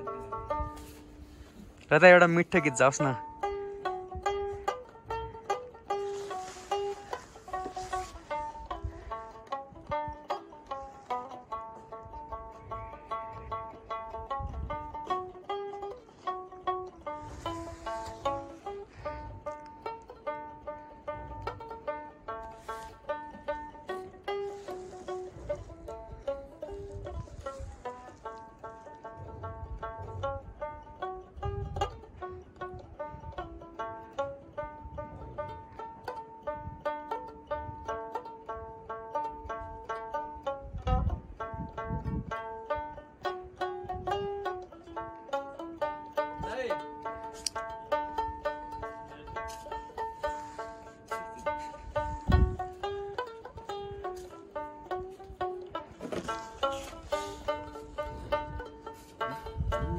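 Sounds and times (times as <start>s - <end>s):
plucked lute folk melody: 0.0s - 59.9s.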